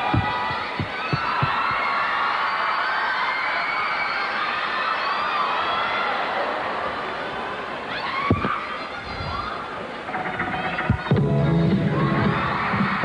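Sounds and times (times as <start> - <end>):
music beat thumps: 0.0 - 1.8
crowd cheering and whooping: 0.0 - 7.1, 11.8 - 13.0.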